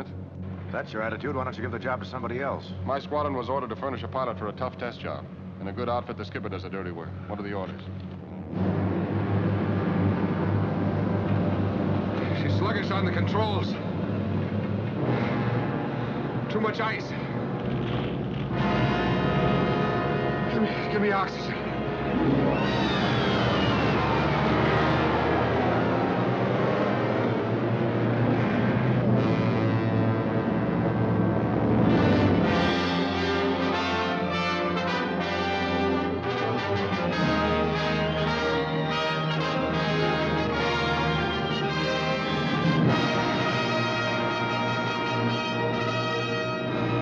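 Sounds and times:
propeller airplane engines droning: 0.0 - 47.0
brass playing held chords: 8.3 - 17.6, 18.5 - 47.0.

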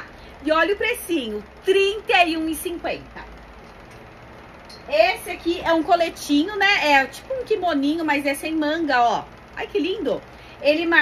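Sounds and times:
woman talking: 0.0 - 3.4, 4.8 - 11.0
low background hum: 0.0 - 11.0.

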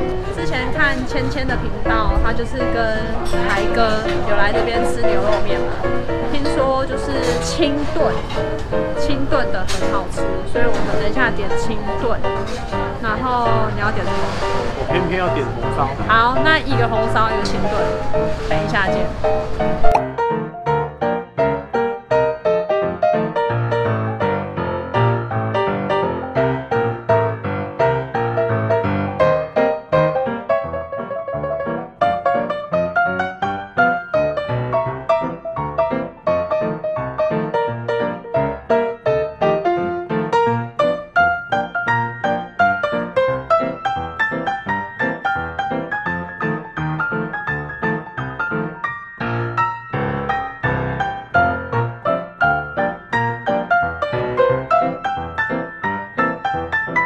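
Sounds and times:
piano music with steady beat: 0.0 - 57.0.

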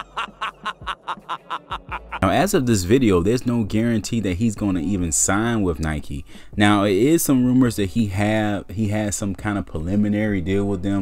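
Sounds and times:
cartoon evil laugh: 0.0 - 2.2.

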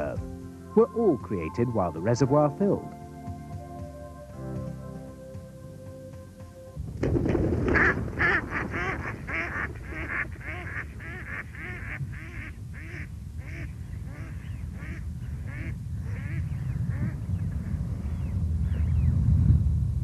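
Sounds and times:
steady low rumble: 5.6 - 20.0
ducks quacking: 7.7 - 17.8.

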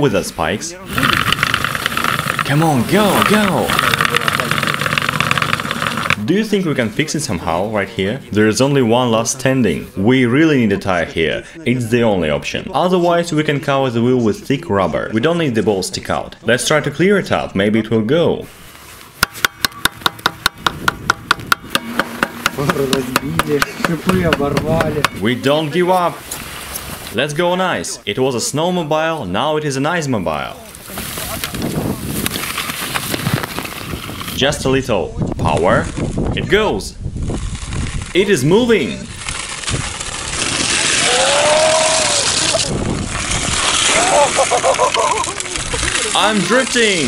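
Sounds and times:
motor wheel scraping on ice: 0.9 - 6.2, 21.4 - 25.3, 30.9 - 34.4, 37.2 - 47.0
screwdriver knocking and scraping ice: 1.0 - 6.2, 19.2 - 25.2
person shouting: 41.0 - 42.3.

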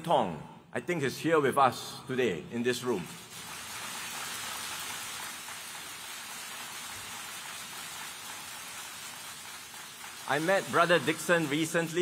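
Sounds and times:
audience applauding: 3.2 - 12.0
person giving a speech: 10.2 - 12.0.

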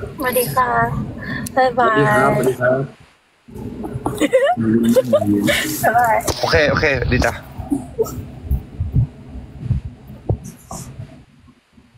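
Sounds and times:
faint background noise: 0.0 - 11.9
soft muffled low thumps: 0.0 - 11.9.

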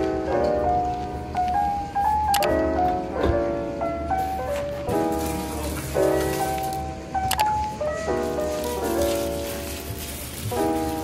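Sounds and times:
soft held chords music: 0.0 - 11.0
sharp click: 2.3 - 2.5, 7.3 - 7.5.

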